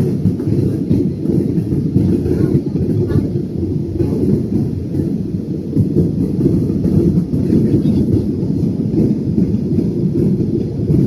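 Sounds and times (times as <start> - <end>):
airliner cabin engine rumble: 0.0 - 11.0.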